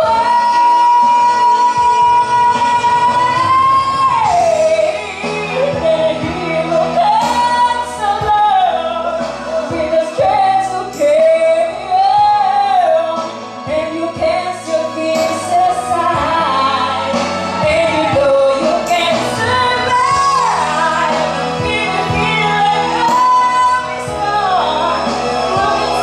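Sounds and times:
karaoke backing track: 0.0s - 26.0s
woman singing into microphone: 0.0s - 26.0s.

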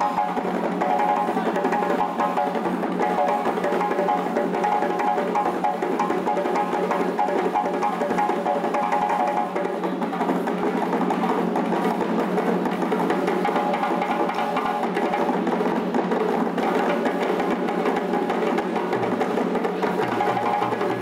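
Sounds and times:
djembe hand slaps: 0.0s - 15.3s, 16.6s - 21.0s
hand drum accompaniment: 0.0s - 21.0s.

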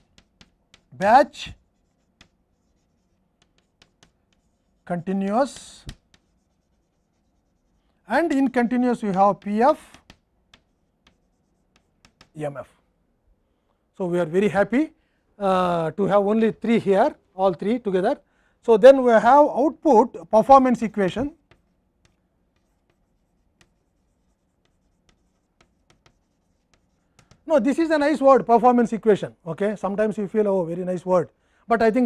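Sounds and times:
chalk tapping on blackboard: 0.0s - 12.6s, 20.4s - 28.0s.

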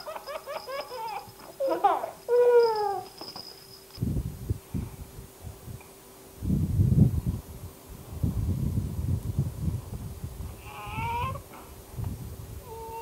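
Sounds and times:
baby whining: 0.0s - 3.2s, 10.6s - 11.4s, 12.6s - 13.0s
wind buffeting microphone: 4.0s - 5.8s, 6.4s - 13.0s.

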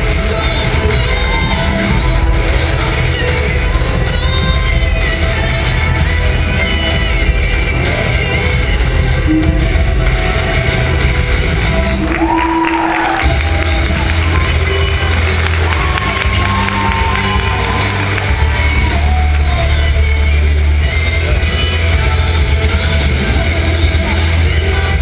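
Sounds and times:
loud rock music with singing: 0.0s - 25.0s
audience cheering and whooping: 11.9s - 19.8s.

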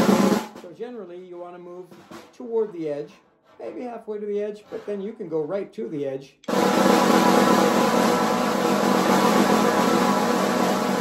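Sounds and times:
snare drum press roll: 0.0s - 0.7s, 6.5s - 11.0s.

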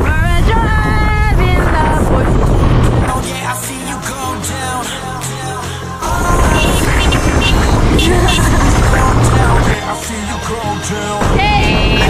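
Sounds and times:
wind noise: 0.0s - 3.2s, 6.1s - 9.8s
vehicle driving on dirt road: 0.0s - 3.3s, 6.0s - 9.8s.

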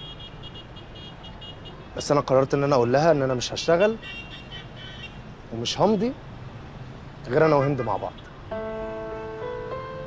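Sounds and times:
low hum of traffic: 0.0s - 10.0s.

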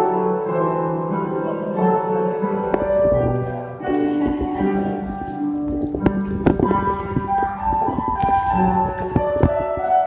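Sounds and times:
instrumental melody: 0.0s - 10.0s.

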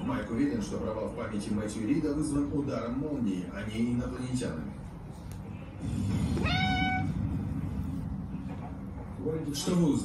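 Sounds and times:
cat meowing: 6.4s - 7.2s.

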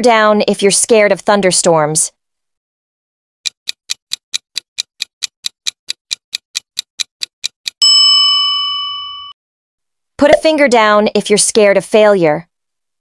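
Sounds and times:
clock ticking quickly: 3.4s - 7.8s
bell ding: 7.8s - 9.4s.

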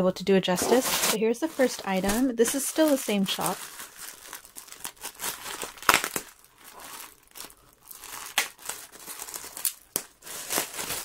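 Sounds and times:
plastic bag crinkling: 0.5s - 11.0s.

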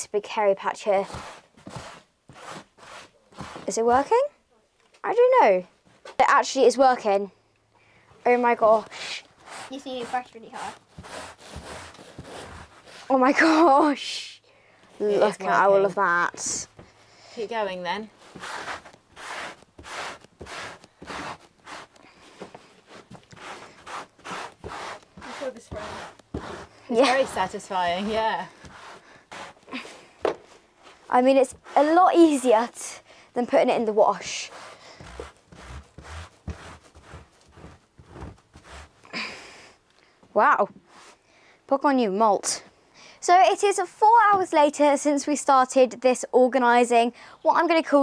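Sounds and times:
brush scraping saddle pad: 0.8s - 4.2s, 8.3s - 13.7s, 17.6s - 32.9s, 33.5s - 39.2s.

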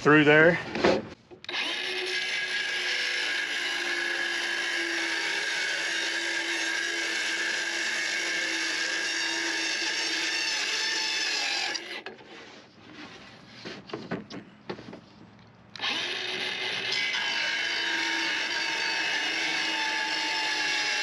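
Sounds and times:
circular saw cutting plywood: 0.8s - 13.9s, 15.8s - 21.0s.

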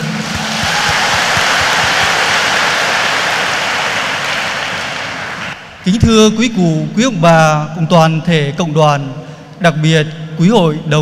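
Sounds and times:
congregation applauding: 0.0s - 5.7s.

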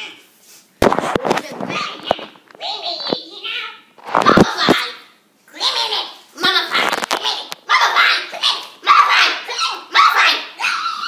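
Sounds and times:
child barking like a dog: 7.7s - 11.0s.

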